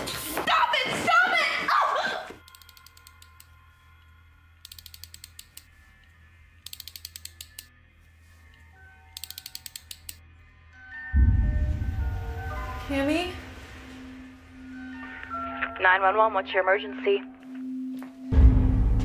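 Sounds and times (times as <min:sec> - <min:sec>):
rapid ratchet-like mechanical clicking: 0:04.6 - 0:05.6, 0:06.6 - 0:07.7.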